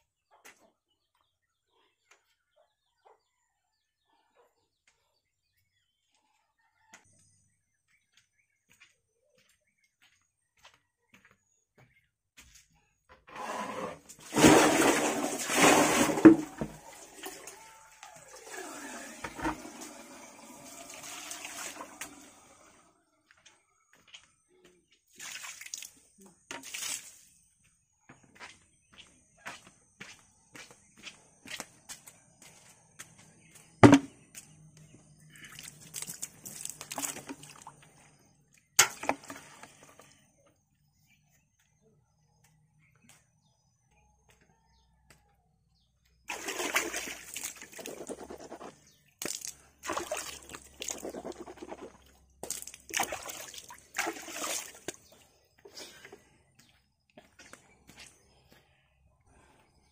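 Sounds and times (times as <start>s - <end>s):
water splashing: 14.2s - 22.4s, 35.4s - 37.8s, 46.3s - 55.2s.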